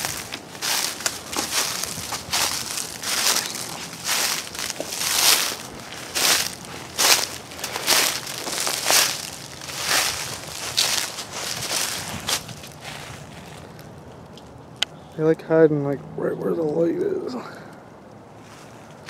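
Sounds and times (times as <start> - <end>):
footsteps crunching dry leaves: 0.0 - 14.6, 18.3 - 19.0.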